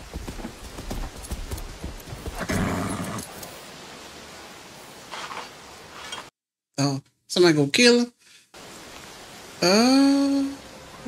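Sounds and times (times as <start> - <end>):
horse hooves clip-clopping: 0.0 - 3.6.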